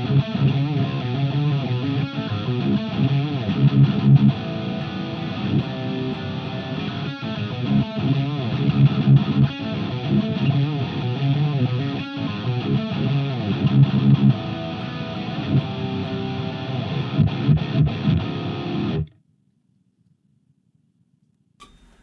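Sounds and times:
electric guitar playing: 0:00.0 - 0:19.1.

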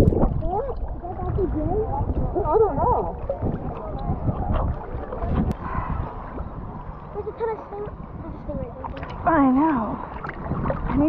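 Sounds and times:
sea water sloshing and gurgling: 0:00.0 - 0:11.0.

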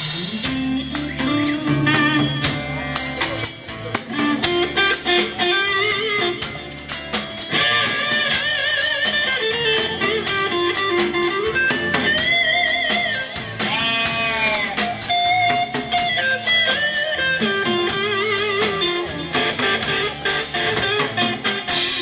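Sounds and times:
drum kit: 0:00.0 - 0:22.0
guitars strumming: 0:00.0 - 0:22.0
wavering lead guitar notes: 0:00.0 - 0:22.0.

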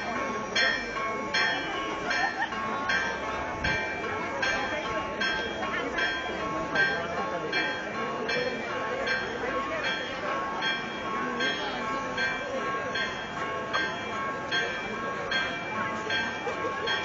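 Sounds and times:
church bells ringing: 0:00.0 - 0:17.0
crowd chatter: 0:00.0 - 0:17.0.

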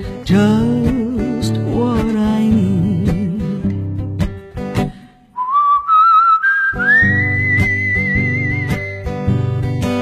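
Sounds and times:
guitar-led music: 0:00.0 - 0:10.0
whistled melody: 0:05.4 - 0:09.3.

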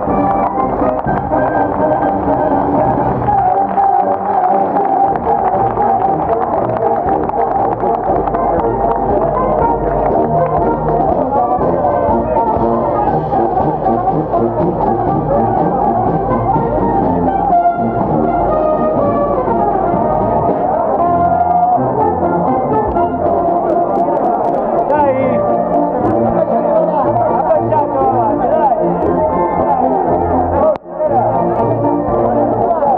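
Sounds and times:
brass band playing: 0:00.0 - 0:32.9.

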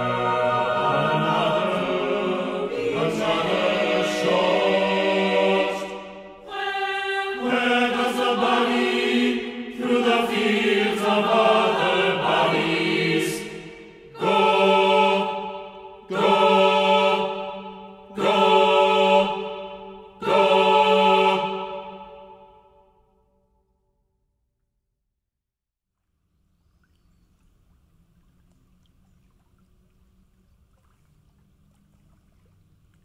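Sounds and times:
choir singing held chords: 0:00.0 - 0:23.0.

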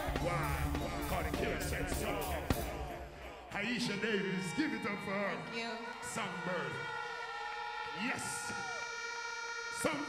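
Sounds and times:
crowd voices and shouts: 0:00.0 - 0:10.0.

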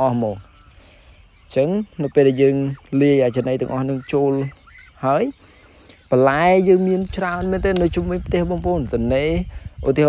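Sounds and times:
man speaking: 0:00.0 - 0:00.6, 0:01.5 - 0:05.4, 0:06.0 - 0:10.0
cricket chirping: 0:00.0 - 0:10.0.

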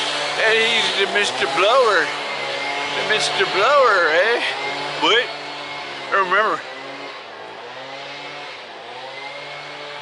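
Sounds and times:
engine droning with high whine: 0:00.0 - 0:10.0.

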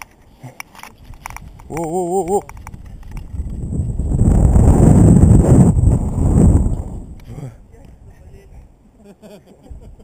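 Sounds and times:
wind buffeting microphone: 0:01.0 - 0:08.7.

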